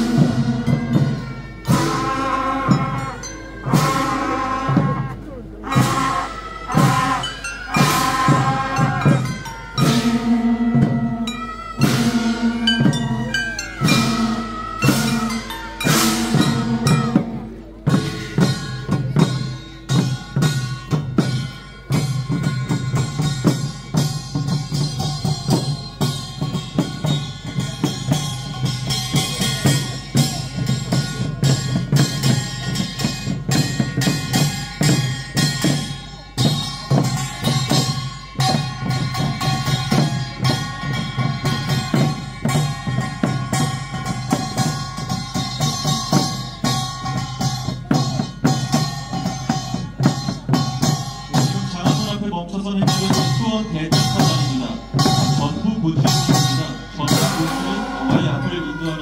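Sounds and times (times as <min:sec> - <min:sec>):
sustained wind instrument notes: 0:00.0 - 0:50.1, 0:53.0 - 0:59.0
marching band drumbeats: 0:00.0 - 0:59.0.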